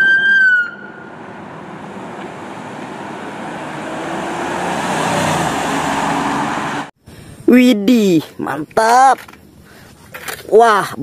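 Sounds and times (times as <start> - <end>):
street traffic: 0.0 - 7.5
vehicle engine and tyre noise: 0.0 - 7.5.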